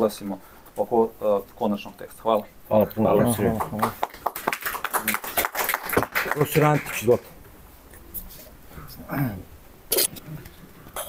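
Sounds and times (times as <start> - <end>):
people clapping in applause: 3.2 - 7.3.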